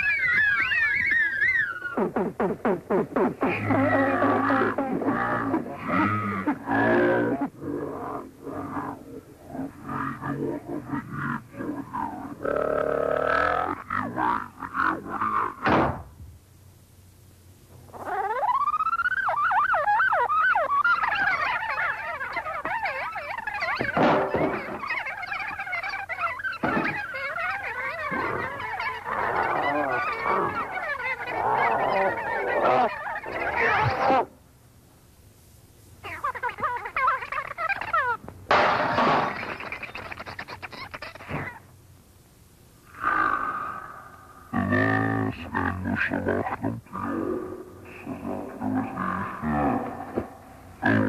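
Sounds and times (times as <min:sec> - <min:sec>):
many overlapping wavering cries: 0:00.0 - 0:02.3, 0:03.3 - 0:15.6, 0:17.8 - 0:34.4, 0:36.0 - 0:41.7, 0:42.9 - 0:51.0.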